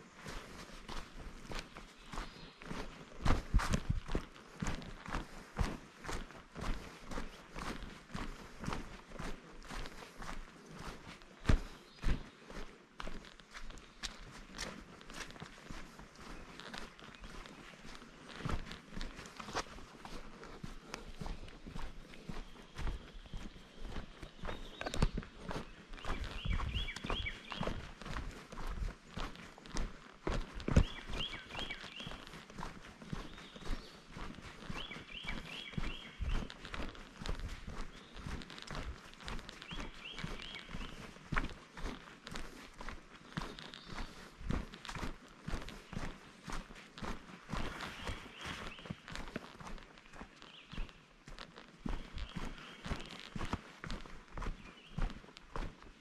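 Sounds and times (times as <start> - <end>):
footsteps on dirt trail: 0.0 - 56.0.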